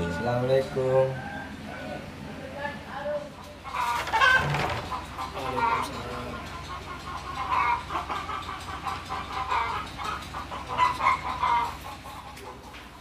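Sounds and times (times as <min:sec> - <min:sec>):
chickens clucking: 0:03.2 - 0:13.0.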